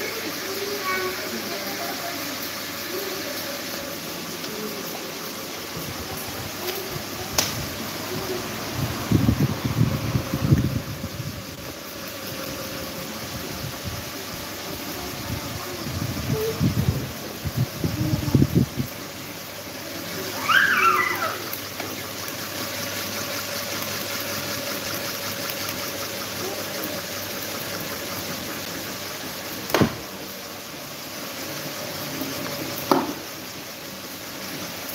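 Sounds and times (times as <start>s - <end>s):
electric fans rushing air: 0.0s - 34.9s.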